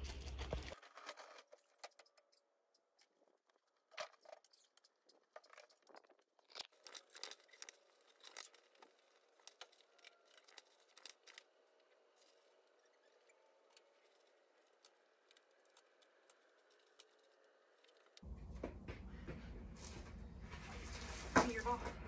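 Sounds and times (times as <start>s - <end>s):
faint clicks and rustles: 0.0s - 22.0s.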